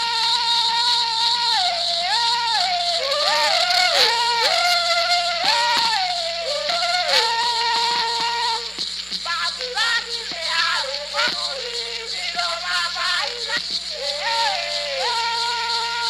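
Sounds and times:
polyphonic yodel singing: 0:00.0 - 0:16.0
recording hiss: 0:00.0 - 0:16.0.

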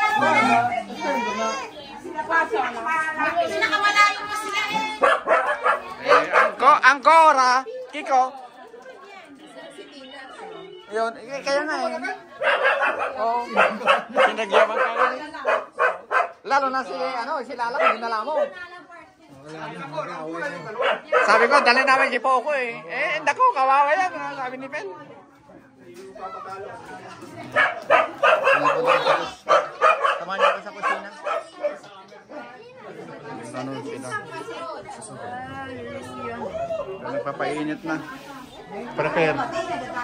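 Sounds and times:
people's voices: 0:00.0 - 0:40.0
dog barking: 0:05.0 - 0:06.6, 0:12.3 - 0:16.4, 0:17.7 - 0:18.6, 0:20.7 - 0:21.8, 0:27.5 - 0:31.9.

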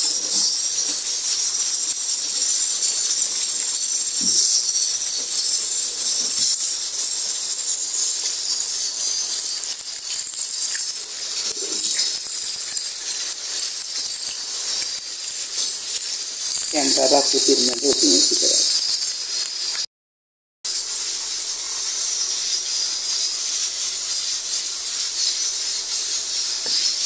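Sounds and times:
tap water running into sink: 0:00.0 - 0:19.8.

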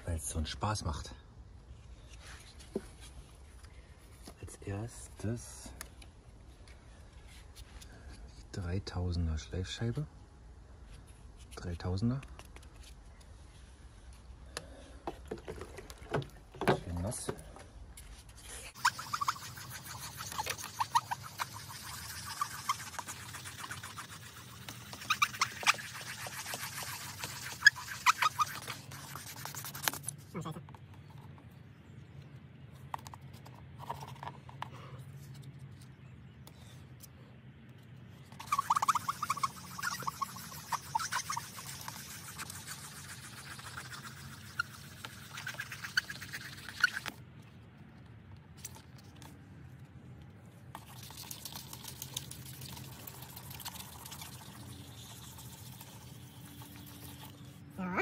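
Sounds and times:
sanding pad scrubbing plastic: 0:18.7 - 0:30.1, 0:38.4 - 0:47.1.

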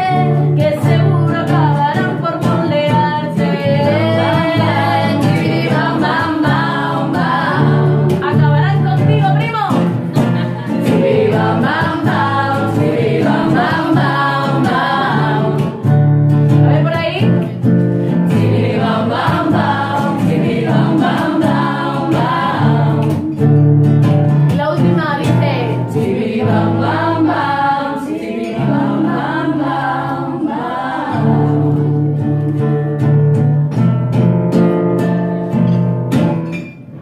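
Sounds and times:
women singing together: 0:00.0 - 0:17.5, 0:18.1 - 0:23.5, 0:24.5 - 0:33.1
acoustic guitar: 0:00.0 - 0:37.0.

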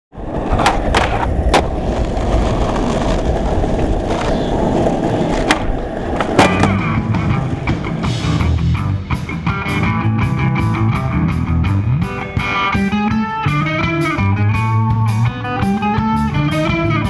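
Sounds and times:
skateboard wheels on asphalt: 0:00.1 - 0:08.7
skateboard clacks: 0:00.2 - 0:08.5.

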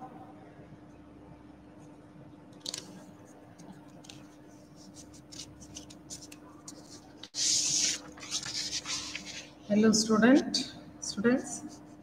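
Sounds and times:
steady low hum: 0:00.0 - 0:12.0
scratching on paper: 0:03.2 - 0:09.6.

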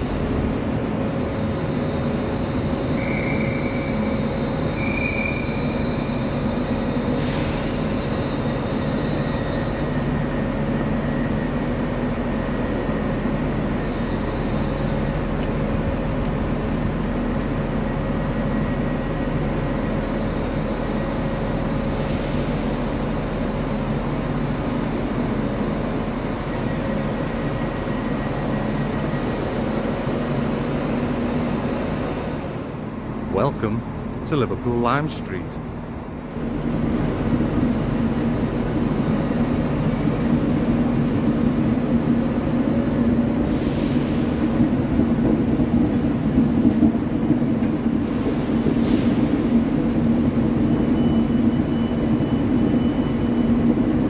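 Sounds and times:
train hum: 0:00.0 - 0:54.0.

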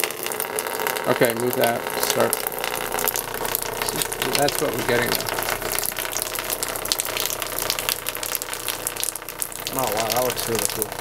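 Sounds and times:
water droplets splashing into trough: 0:00.0 - 0:11.0.

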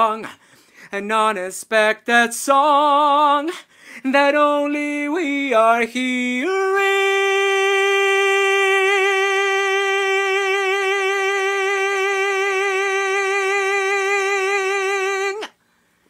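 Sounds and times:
man singing sustained note: 0:06.8 - 0:15.5.

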